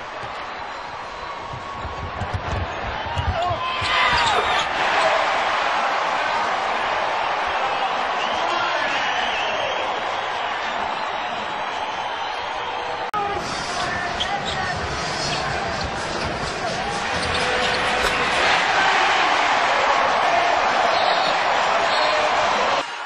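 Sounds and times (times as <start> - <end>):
crowd cheering: 0.0 - 23.0
basketball bouncing on hardwood: 1.5 - 4.6.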